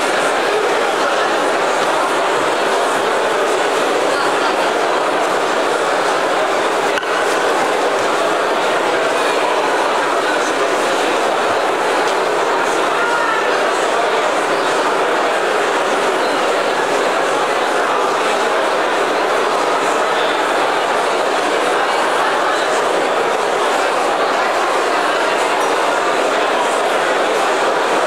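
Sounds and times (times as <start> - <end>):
crowd chatter in a hall: 0.0 - 28.0.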